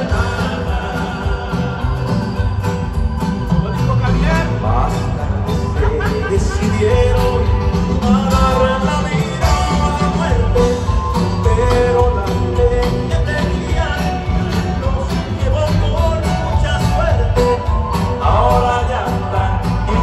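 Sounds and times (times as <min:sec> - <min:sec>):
live band music over sound system: 0:00.0 - 0:20.0
person singing: 0:00.0 - 0:20.0.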